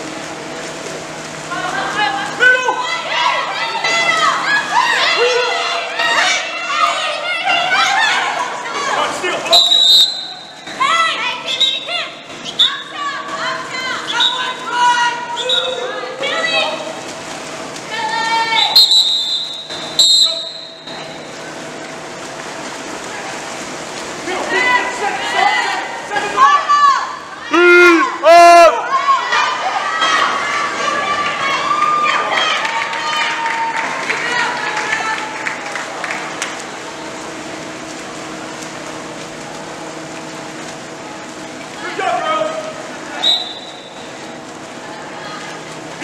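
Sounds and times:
voices shouting across indoor pool: 0.0 - 46.0
referee's whistle blasts: 9.5 - 10.6, 18.6 - 21.0, 43.2 - 44.0.

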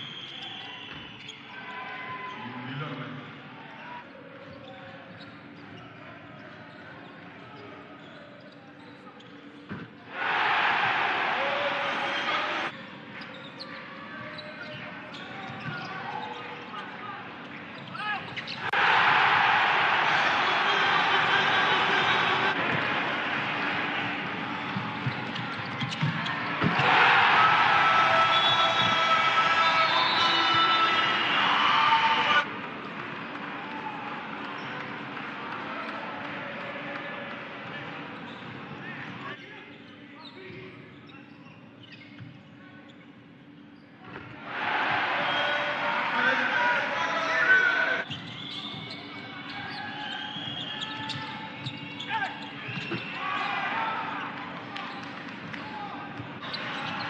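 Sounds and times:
crowd noise: 9.7 - 39.4, 44.4 - 57.0
basketball bouncing on court: 22.6 - 26.9.

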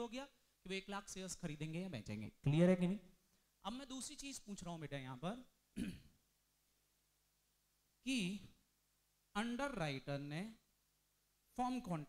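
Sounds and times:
man speaking: 0.0 - 5.5, 8.0 - 8.6, 9.4 - 10.6, 11.5 - 12.0
throat clearing: 5.8 - 6.2.

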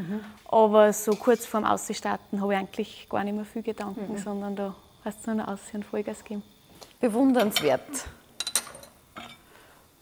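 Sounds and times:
utensils clinking on frying pan: 8.4 - 9.5.

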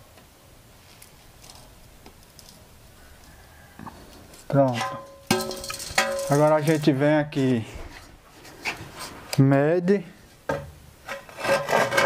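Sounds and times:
rule scraping against brick wall: 10.4 - 12.0.

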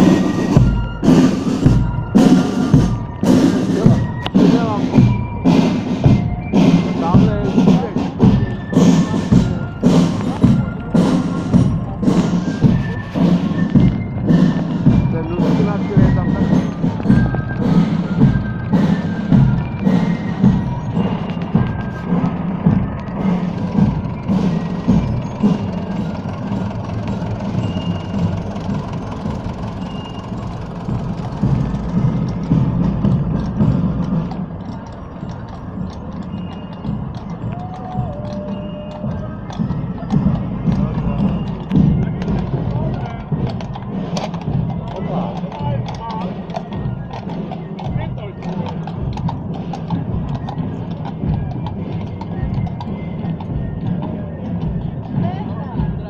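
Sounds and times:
crowd voices: 0.0 - 56.0
hooves clip-clopping on cobblestones: 0.0 - 56.0
parade music with drumbeat: 0.0 - 56.0
tractor engine running: 0.0 - 56.0.

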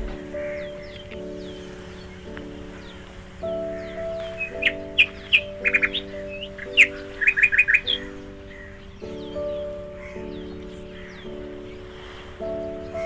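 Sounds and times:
birds chirping: 0.0 - 13.0
soft background music chords: 0.0 - 13.0.

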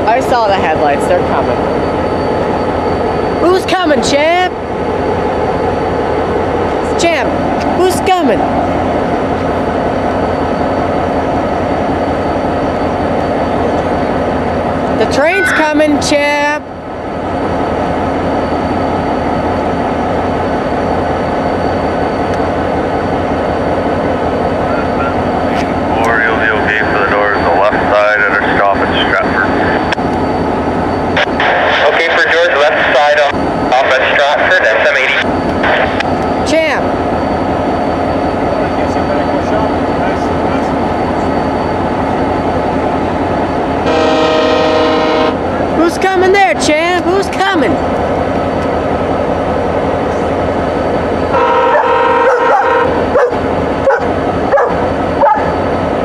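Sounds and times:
diesel locomotive idling: 0.0 - 56.0
train horn: 43.8 - 45.4, 51.3 - 53.1
dogs barking: 51.6 - 55.6.

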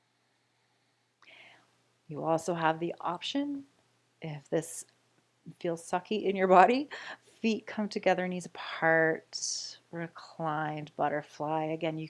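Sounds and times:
person drawing breath: 1.2 - 1.7.

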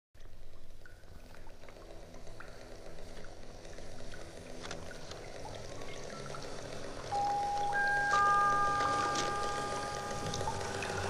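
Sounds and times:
low sustained tones: 5.8 - 11.0.

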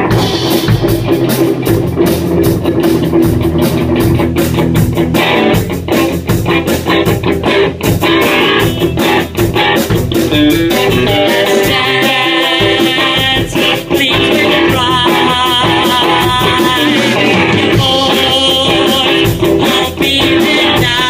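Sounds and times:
rock band playing live: 0.0 - 21.0.

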